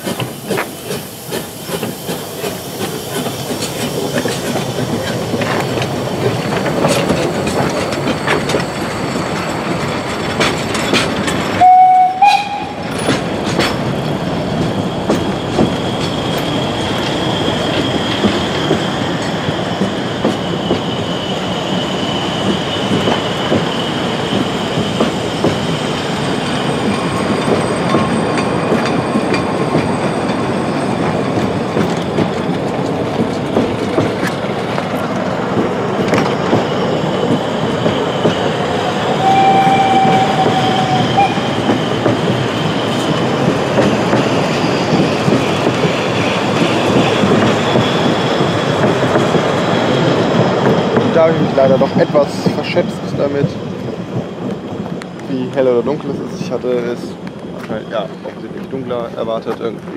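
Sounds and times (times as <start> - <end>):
train wheels clattering over rail joints: 0.0 - 59.9
faint high wheel squeal: 13.8 - 31.3, 36.1 - 43.5.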